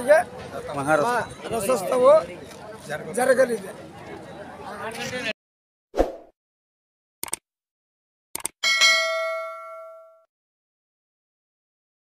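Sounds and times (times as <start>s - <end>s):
notification bell chime: 8.6s - 10.3s.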